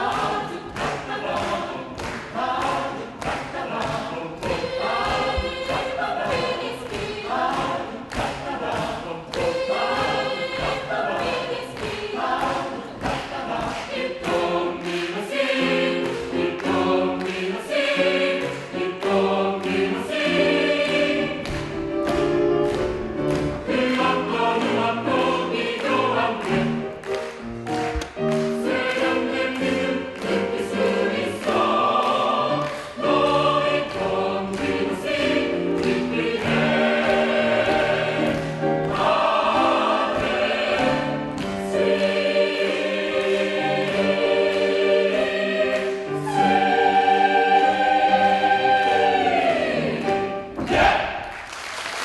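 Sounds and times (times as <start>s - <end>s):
choir singing swing jazz: 0.0s - 51.4s.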